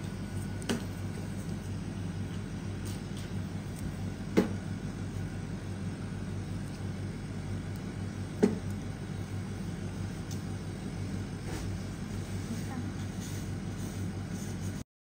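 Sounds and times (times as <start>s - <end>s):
low machine hum: 0.0s - 14.8s.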